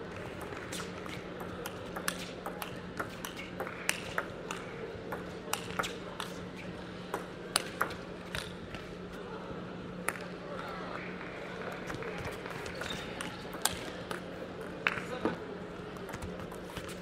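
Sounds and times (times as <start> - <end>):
table tennis ball clicks: 0.3 - 6.4.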